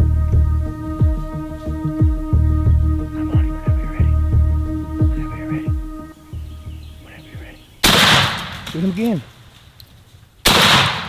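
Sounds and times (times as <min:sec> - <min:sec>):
shotgun blasts: 0:07.8 - 0:09.2, 0:10.4 - 0:11.0.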